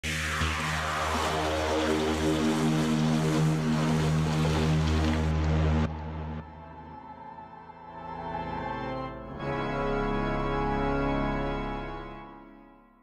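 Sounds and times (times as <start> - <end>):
rushing noise: 0.0 - 5.8.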